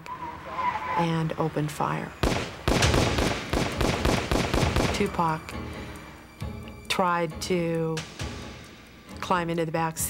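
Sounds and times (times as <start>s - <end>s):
rapid gunshots: 2.2s - 5.1s.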